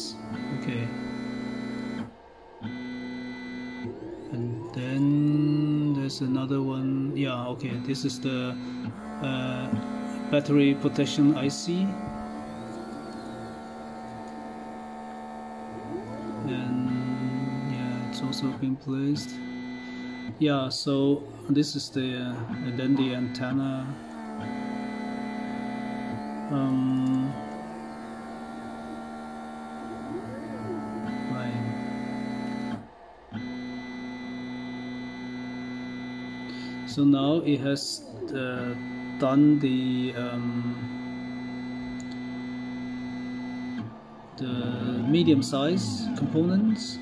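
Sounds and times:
stepper motors whining: 0.0 - 47.0.

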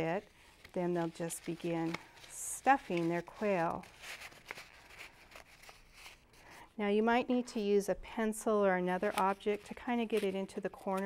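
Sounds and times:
toilet paper rustling: 0.0 - 6.6
soft ticks of paper handling: 0.5 - 6.2.

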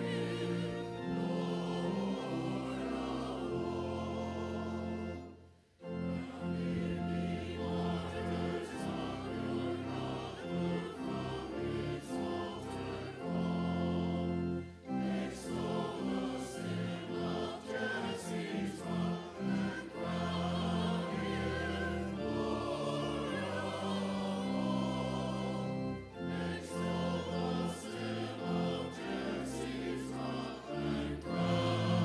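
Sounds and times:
church choir singing: 0.0 - 32.0
organ chords: 0.0 - 32.0.

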